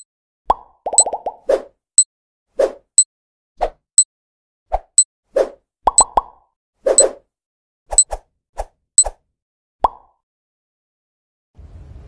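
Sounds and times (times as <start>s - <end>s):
soft cartoon plops: 5.9s - 6.4s.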